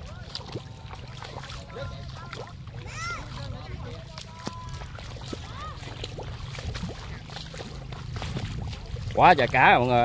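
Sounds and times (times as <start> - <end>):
feet splashing through water: 0.0 - 10.0
steady low rumble: 0.0 - 10.0.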